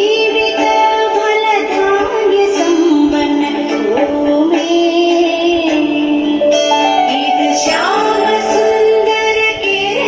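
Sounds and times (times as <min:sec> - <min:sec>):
instrumental accompaniment: 0:00.0 - 0:10.0
woman singing: 0:00.0 - 0:10.0.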